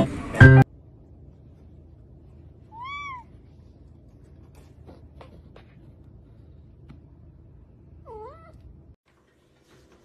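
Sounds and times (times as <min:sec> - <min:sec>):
cat meowing: 0:02.7 - 0:03.3, 0:08.1 - 0:08.6.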